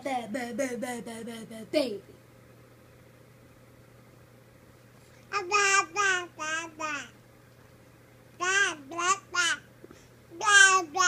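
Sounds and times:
baby babbling: 5.3 - 7.2, 8.4 - 9.7, 10.4 - 11.0.

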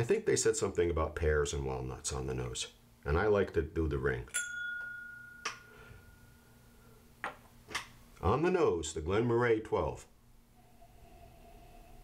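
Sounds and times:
glass ringing: 4.3 - 6.7.

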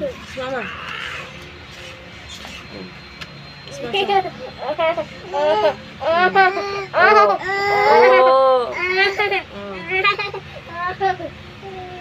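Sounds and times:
baby crying: 0.4 - 1.4, 4.6 - 9.4.

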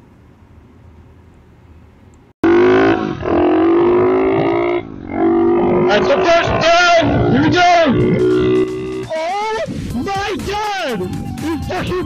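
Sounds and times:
pit bike engine revving: 2.4 - 9.2.

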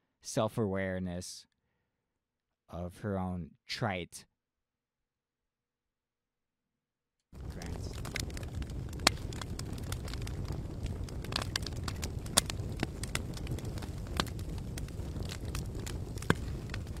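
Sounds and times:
fire crackling and popping: 7.3 - 17.0
low rumble of flames: 7.4 - 17.0.

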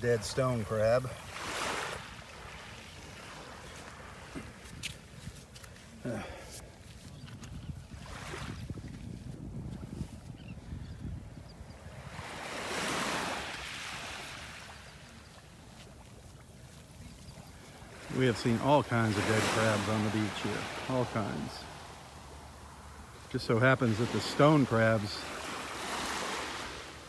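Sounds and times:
small waves washing on shore: 0.0 - 27.0
wind rumbling on microphone: 6.6 - 17.8.

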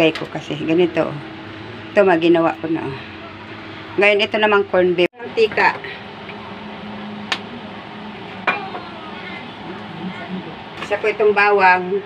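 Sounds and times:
steady hiss and low hum: 0.0 - 12.0.

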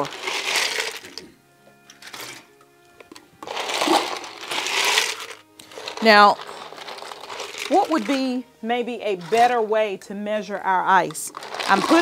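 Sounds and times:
ice cubes crunching and rattling: 0.0 - 1.3, 2.0 - 2.5, 3.4 - 8.4, 9.2 - 9.6, 11.1 - 12.0.

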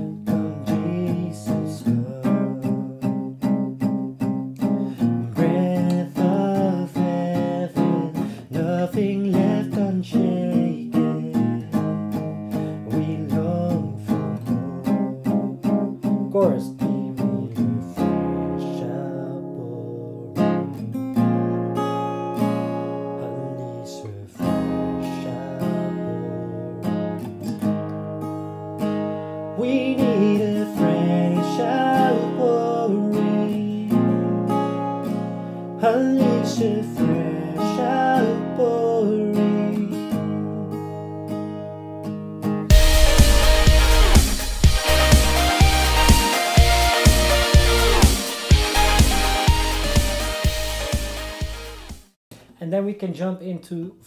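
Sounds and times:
man singing: 0.0 - 3.3, 5.2 - 17.8, 18.4 - 20.8, 23.1 - 26.9, 29.6 - 34.6, 35.8 - 40.9
acoustic guitar strumming: 0.0 - 52.1.

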